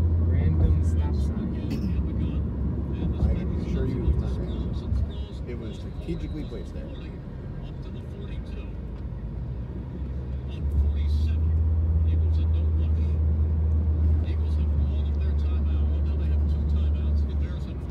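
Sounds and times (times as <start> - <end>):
car engine and road rumble: 0.0 - 17.9.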